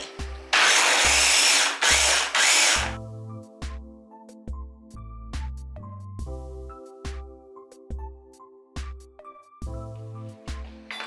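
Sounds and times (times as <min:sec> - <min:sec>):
blender whirring: 0:00.5 - 0:03.0.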